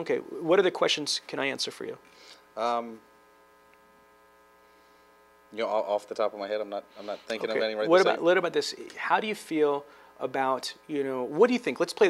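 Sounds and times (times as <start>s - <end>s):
electrical mains hum: 0.0s - 12.0s
man saying um: 7.0s - 9.0s.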